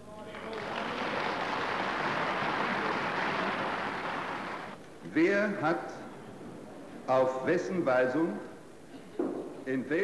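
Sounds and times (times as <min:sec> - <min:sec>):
audience applause: 0:00.2 - 0:04.8.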